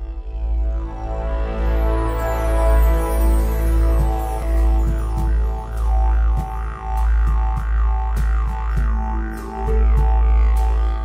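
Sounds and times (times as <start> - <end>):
didgeridoo drone: 0.0 - 11.0
sustained backing tones: 0.0 - 11.0.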